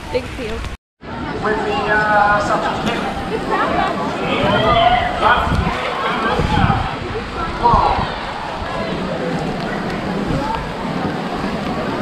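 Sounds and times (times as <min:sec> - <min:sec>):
rain on a wet path: 0:03.1 - 0:12.0.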